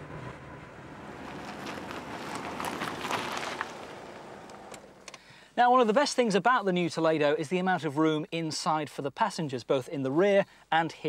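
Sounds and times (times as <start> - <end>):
car engine and tyre noise: 0.0 - 5.4.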